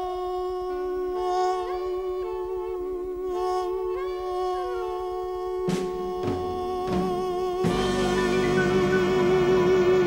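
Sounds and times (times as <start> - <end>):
man singing long note: 2.9 - 10.0
orchestra chords: 7.6 - 10.0.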